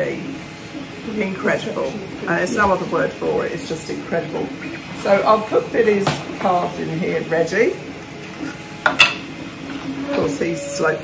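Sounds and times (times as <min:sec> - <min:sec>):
faint printer hum: 0:00.0 - 0:11.0.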